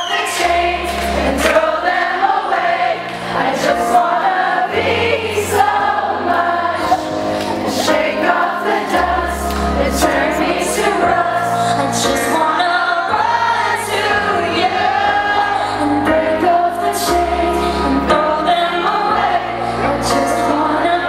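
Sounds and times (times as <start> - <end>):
keyboard chords: 0.0 - 21.0
woman singing: 7.8 - 21.0.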